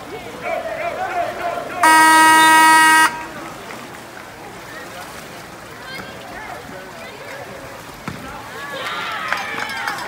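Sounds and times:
voices shouting: 0:00.2 - 0:03.5
timing horn buzzing: 0:01.8 - 0:03.3.

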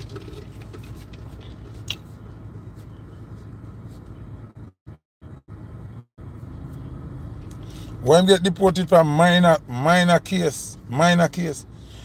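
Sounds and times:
car interior engine rumble: 0:00.0 - 0:12.0.

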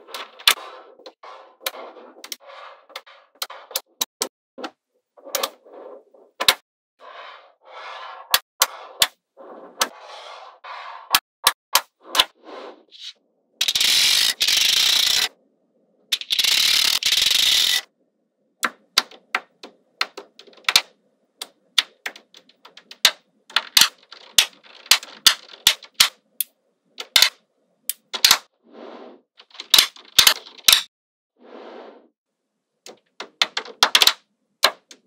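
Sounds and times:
magnet balls clicking together: 0:16.1 - 0:17.8.

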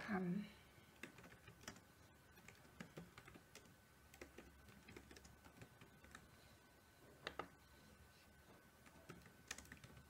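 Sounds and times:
faint keyboard typing: 0:00.8 - 0:10.0.

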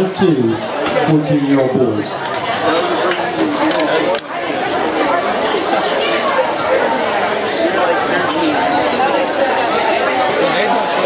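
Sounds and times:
spectators chattering: 0:00.0 - 0:11.0.

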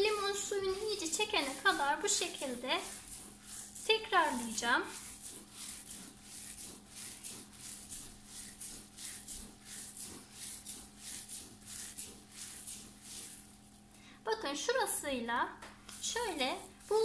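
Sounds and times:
hands kneading food on metal tray: 0:00.0 - 0:15.0, 0:15.8 - 0:17.0.

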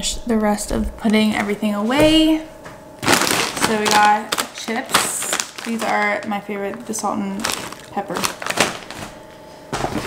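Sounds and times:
plastic chip bag crinkling: 0:03.0 - 0:09.3
hand rummaging in paper bag: 0:03.0 - 0:10.0.

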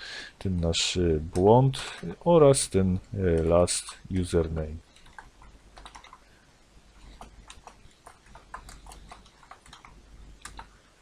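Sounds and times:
computer keyboard keys clicking: 0:04.9 - 0:06.3, 0:07.2 - 0:10.7.

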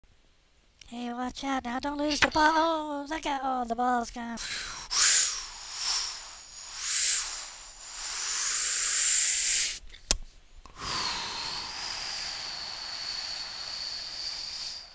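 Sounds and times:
sharp pop: 0:02.1 - 0:02.5
cartoon whooshing hiss: 0:04.4 - 0:09.8, 0:10.8 - 0:14.9
air escaping hiss: 0:04.4 - 0:09.9, 0:10.7 - 0:14.9.

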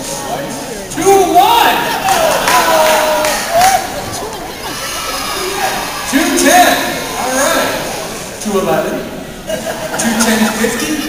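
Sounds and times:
overlapping voices in echoing hall: 0:00.0 - 0:11.0.

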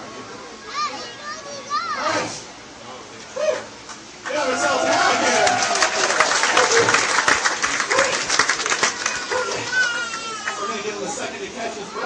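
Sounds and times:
children calling out: 0:07.8 - 0:11.0.

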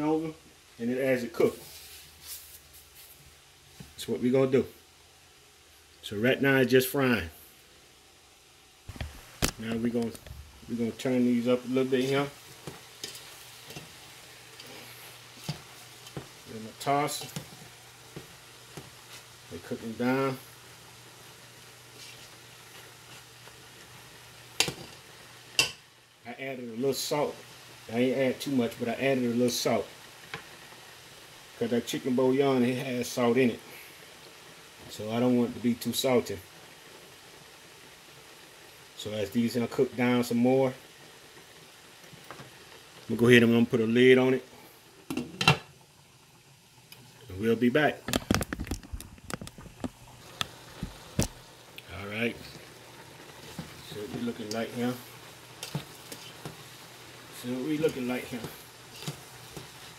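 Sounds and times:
food sizzling in a pot: 0:00.0 - 0:59.9
cabbage frying and popping: 0:07.6 - 0:59.9.

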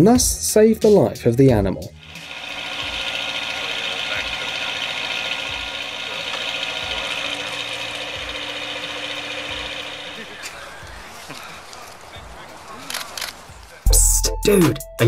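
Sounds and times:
machinery droning: 0:02.0 - 0:12.6.

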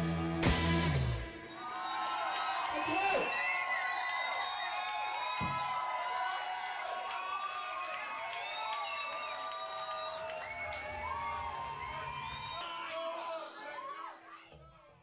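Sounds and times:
concert crowd cheering and screaming: 0:01.4 - 0:14.7.

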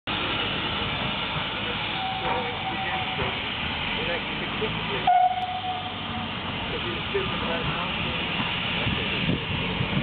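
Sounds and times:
steam hissing: 0:00.1 - 0:10.0
faint steady note: 0:05.1 - 0:06.4.

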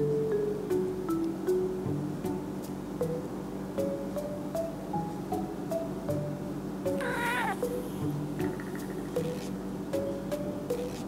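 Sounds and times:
light background music: 0:00.0 - 0:11.0
cat meowing: 0:07.0 - 0:07.8.

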